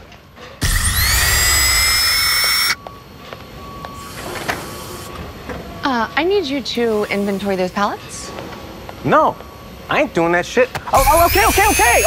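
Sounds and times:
whirring screech with whine: 0:00.6 - 0:02.8, 0:11.0 - 0:12.0.

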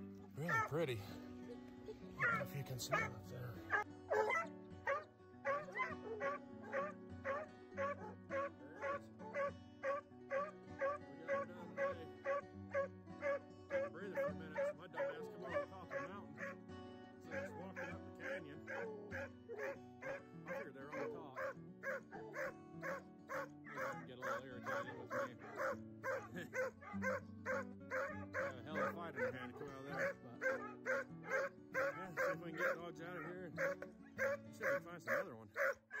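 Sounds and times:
background music: 0:00.0 - 0:36.0
hounds barking: 0:00.3 - 0:16.7, 0:17.3 - 0:36.0.

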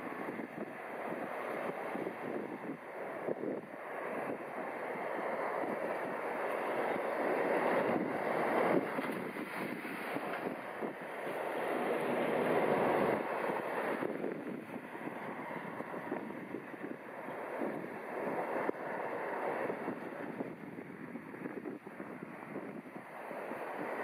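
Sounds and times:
wind rushing on microphone: 0:00.0 - 0:24.0.

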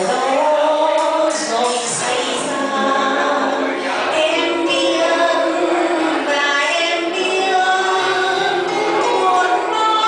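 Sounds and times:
musical accompaniment: 0:00.0 - 0:10.0
woman singing into a microphone: 0:00.0 - 0:10.0.

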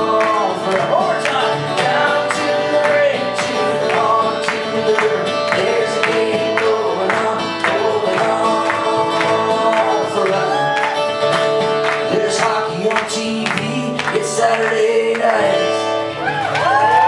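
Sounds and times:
held guitar notes: 0:00.0 - 0:16.8
acoustic guitar strumming: 0:00.0 - 0:17.0.

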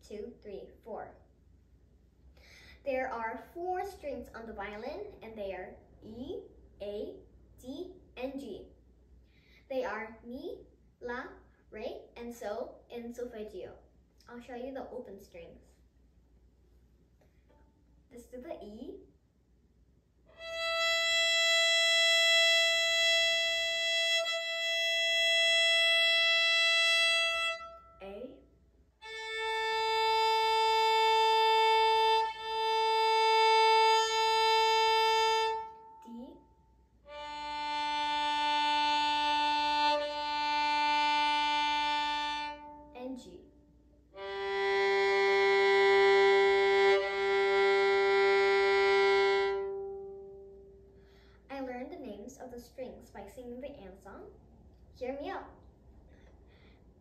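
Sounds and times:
violin open strings bowed: 0:20.3 - 0:28.1, 0:29.0 - 0:36.3, 0:37.0 - 0:43.0, 0:44.1 - 0:50.5.

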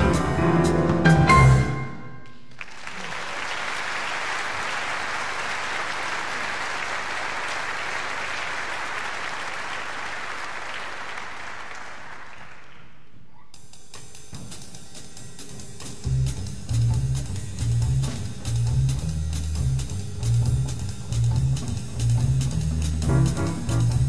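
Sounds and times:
audience applauding: 0:02.2 - 0:13.2.

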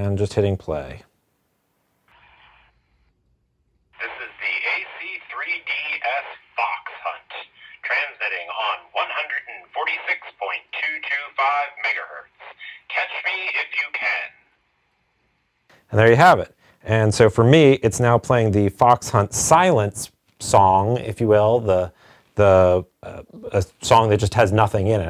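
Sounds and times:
radio hiss: 0:02.0 - 0:03.1, 0:04.0 - 0:14.6
man's voice over radio speaker: 0:04.0 - 0:14.4.

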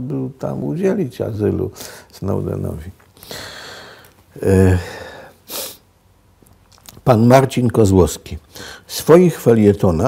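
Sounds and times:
man's sharp intake of breath: 0:03.2 - 0:05.9.

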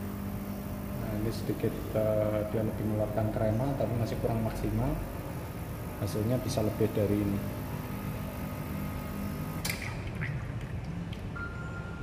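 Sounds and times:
espresso machine pump running: 0:00.0 - 0:10.8
sharp click: 0:09.6 - 0:10.0.

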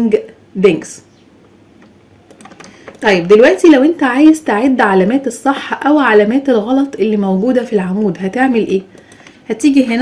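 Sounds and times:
light computer clicks: 0:01.8 - 0:03.1, 0:08.9 - 0:09.4.

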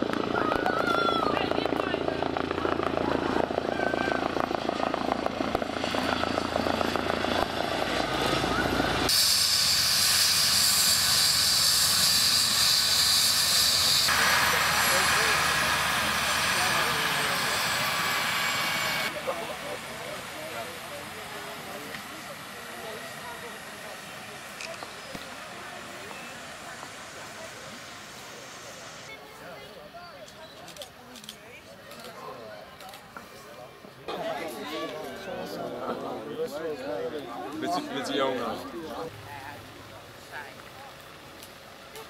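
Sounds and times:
helicopter rotor beating: 0:00.0 - 0:29.2
helicopter turbine whine: 0:00.0 - 0:30.0.

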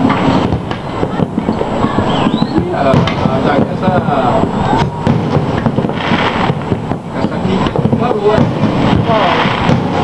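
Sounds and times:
fireworks bangs and crackles: 0:00.0 - 0:10.0.

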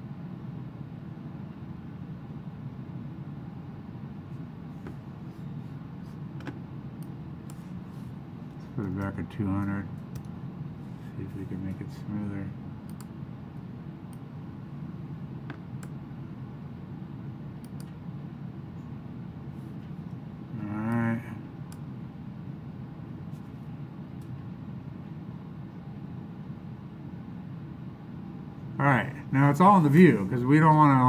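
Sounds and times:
low background hum: 0:00.0 - 0:31.0
faint mouse clicks: 0:12.9 - 0:13.1, 0:17.6 - 0:18.0.

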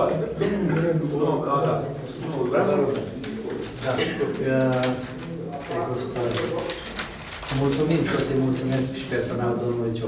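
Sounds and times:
men speaking: 0:00.0 - 0:06.9, 0:07.5 - 0:10.0.

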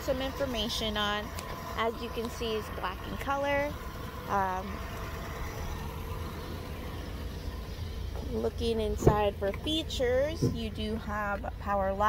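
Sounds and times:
low outdoor rumble and hiss: 0:00.0 - 0:12.0.

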